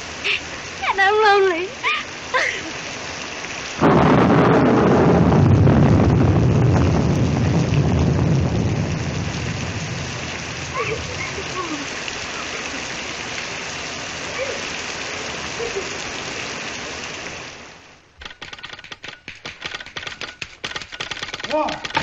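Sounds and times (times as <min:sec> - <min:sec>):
heavy rain falling: 0:00.0 - 0:22.0
thunder clap rumbling: 0:03.8 - 0:12.9.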